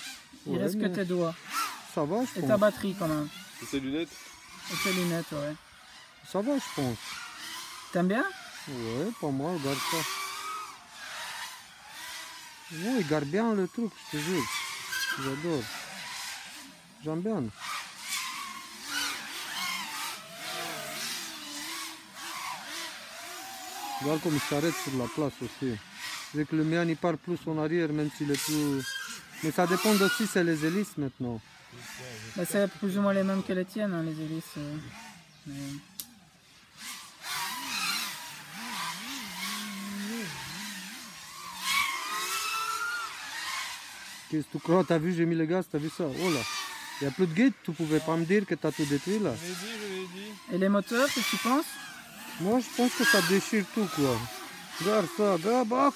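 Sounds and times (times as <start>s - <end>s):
drone motors whining: 0.0s - 55.9s.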